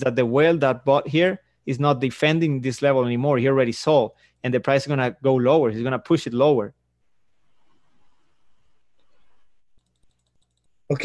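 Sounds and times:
man speaking: 0:00.0 - 0:06.8
mouse scroll wheel ticking: 0:09.0 - 0:10.8.

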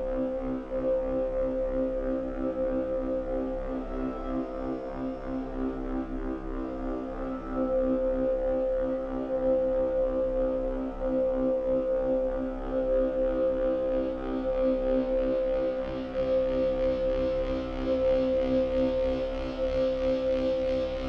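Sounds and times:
synthesizer ambient drone: 0:00.0 - 0:21.0.

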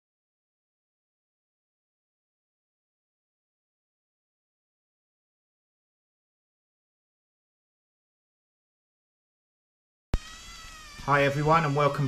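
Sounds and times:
electric motor and gears whining: 0:10.2 - 0:12.0.

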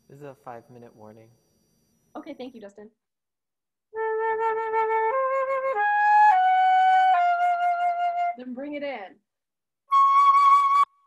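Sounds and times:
flute playing held notes: 0:09.9 - 0:11.0.

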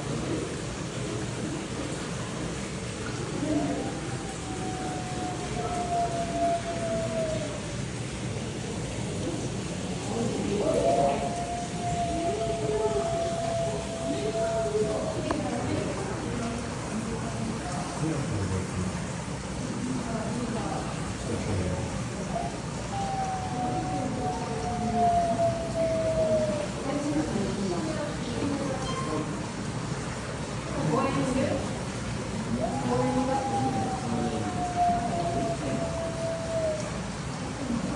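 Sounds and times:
steady background noise: 0:00.0 - 0:37.9
wolf howling: 0:03.2 - 0:07.8, 0:10.0 - 0:16.7, 0:22.3 - 0:29.3, 0:32.3 - 0:37.8.

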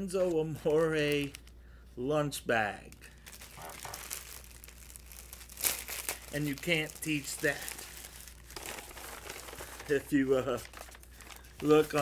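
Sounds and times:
plastic wrapper crinkling: 0:00.2 - 0:01.6, 0:02.9 - 0:12.0.

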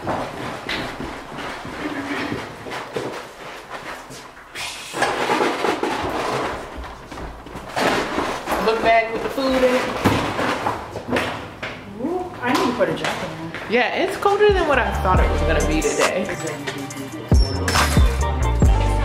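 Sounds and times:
footsteps going down stairs: 0:00.0 - 0:15.3.

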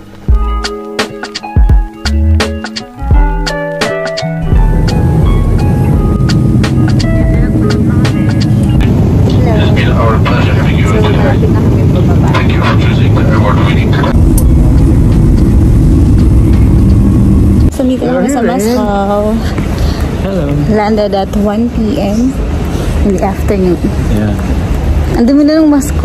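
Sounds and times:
airliner cabin rumble: 0:04.2 - 0:26.0
voices talking: 0:08.8 - 0:14.2, 0:17.7 - 0:22.4, 0:23.0 - 0:26.0.

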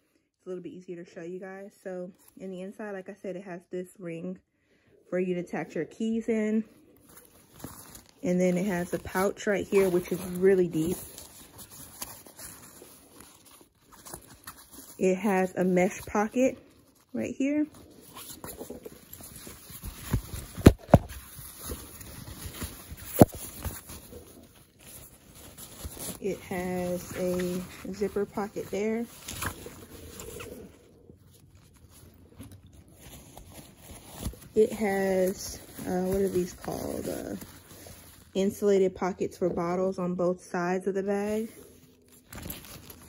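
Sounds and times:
hand rustling inside fabric bag: 0:06.7 - 0:38.9, 0:41.2 - 0:43.0.

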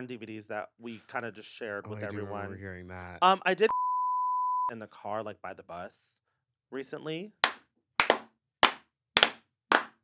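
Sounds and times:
slow hand claps: 0:07.4 - 0:10.0.

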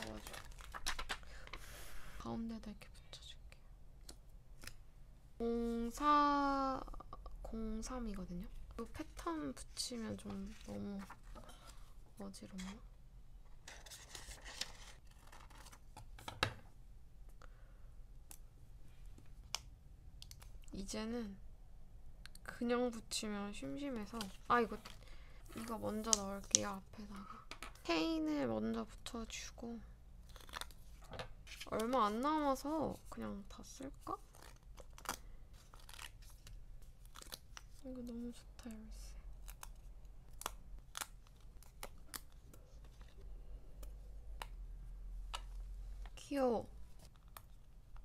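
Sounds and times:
paper handling: 0:00.0 - 0:01.7, 0:10.0 - 0:11.9, 0:13.6 - 0:16.1.

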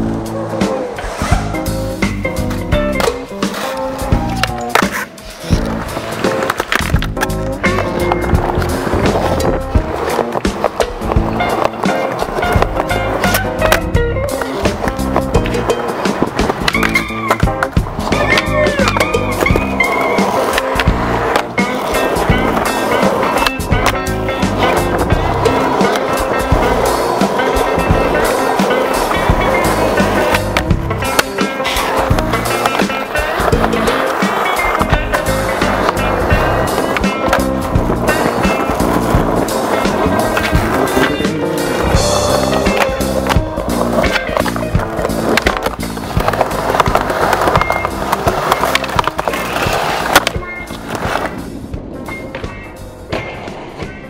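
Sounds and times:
music soundtrack: 0:00.0 - 0:54.0
skateboard wheels rolling on concrete: 0:00.0 - 0:54.0
skateboard clacks: 0:00.1 - 0:54.0.

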